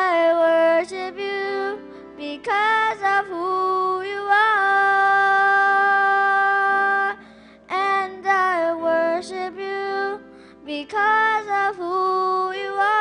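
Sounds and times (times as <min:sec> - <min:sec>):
girl singing: 0:00.0 - 0:13.0.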